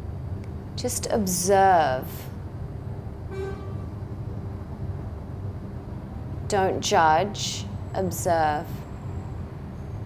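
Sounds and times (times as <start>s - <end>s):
low background rumble: 0.0s - 10.0s
faint short toot: 3.3s - 3.9s.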